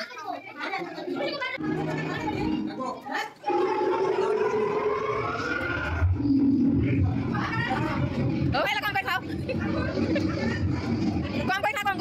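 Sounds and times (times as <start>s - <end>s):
people's voices in a room: 0.0s - 12.0s.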